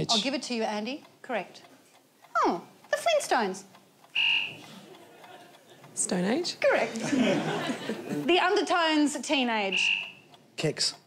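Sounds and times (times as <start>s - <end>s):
faint studio room noise: 0.0s - 11.0s
buzzer tone: 4.2s - 4.6s, 9.6s - 10.2s.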